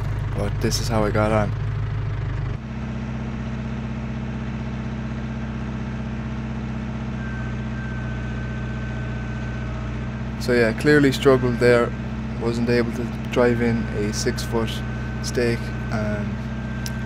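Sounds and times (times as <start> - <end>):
tractor diesel engine running: 0.0 - 17.0.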